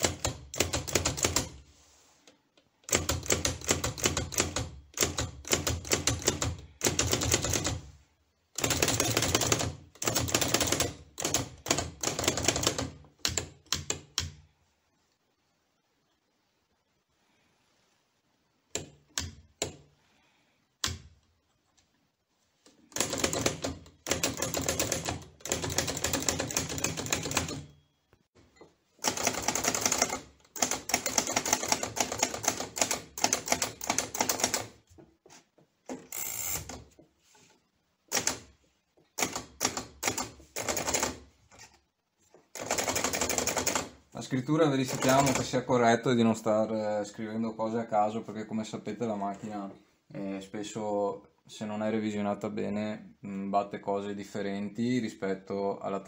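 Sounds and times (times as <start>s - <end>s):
typewriter typing: 0.0s - 1.6s, 2.8s - 7.9s, 8.5s - 14.4s, 22.9s - 27.8s, 29.0s - 34.8s, 38.1s - 38.5s, 39.2s - 41.2s, 42.5s - 44.0s, 44.7s - 45.6s.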